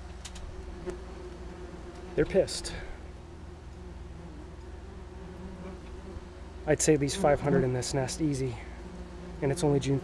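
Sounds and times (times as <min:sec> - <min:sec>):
wasps buzzing: 0:00.0 - 0:10.0.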